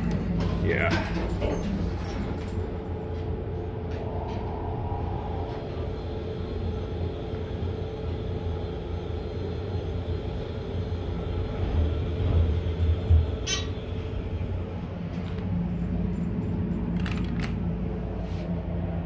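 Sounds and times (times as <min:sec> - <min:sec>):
elevator rumble and hum: 0:00.0 - 0:19.0.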